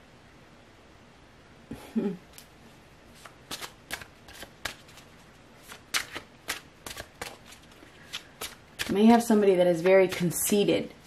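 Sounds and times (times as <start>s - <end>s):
cards being shuffled: 3.1s - 10.6s.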